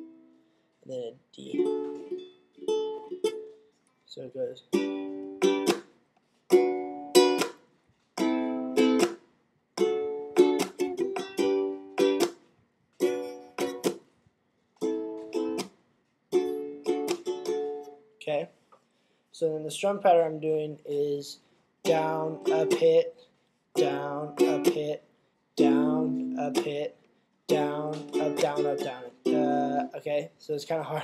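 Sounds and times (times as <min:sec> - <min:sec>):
ukulele strumming: 0:01.4 - 0:03.6, 0:04.6 - 0:09.2, 0:09.8 - 0:12.4, 0:13.0 - 0:14.1, 0:14.8 - 0:15.7, 0:16.3 - 0:18.0, 0:21.8 - 0:23.1, 0:23.8 - 0:25.0, 0:25.6 - 0:26.9, 0:27.5 - 0:30.1.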